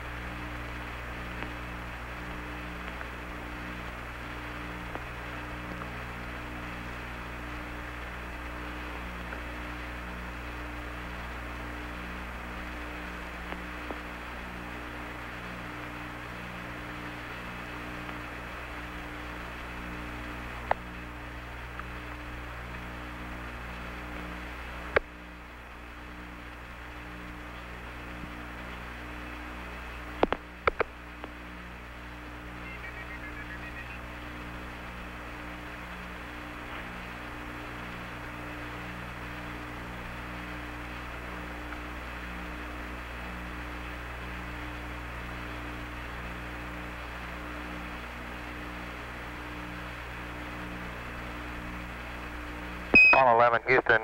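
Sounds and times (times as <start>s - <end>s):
radio hiss and hum: 0.0s - 54.0s
sharp radio clicks: 30.2s - 31.4s, 32.5s - 34.1s, 53.0s - 54.0s.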